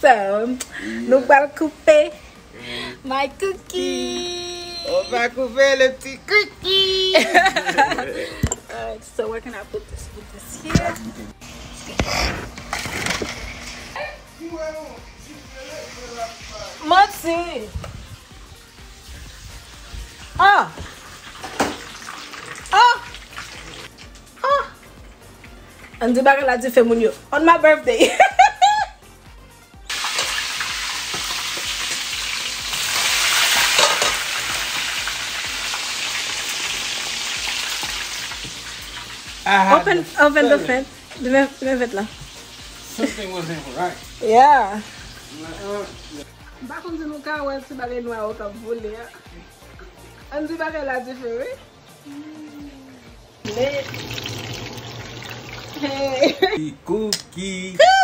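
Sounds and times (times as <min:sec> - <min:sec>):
food sizzling in hot oil: 0:10.7 - 0:14.0, 0:14.8 - 0:27.4, 0:29.8 - 0:51.5, 0:53.4 - 0:56.6.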